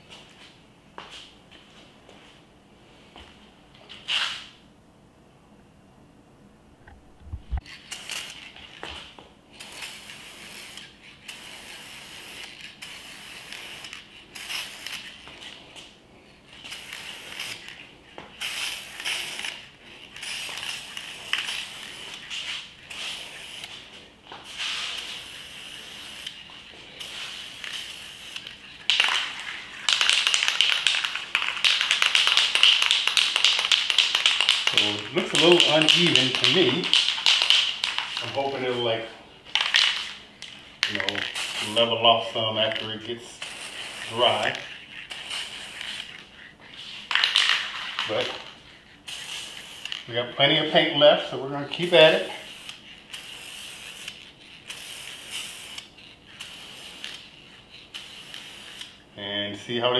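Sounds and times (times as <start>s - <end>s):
spray paint can hissing: 7.6s - 8.9s, 9.6s - 15.6s, 16.5s - 38.8s, 39.5s - 50.9s, 51.7s - 59.0s.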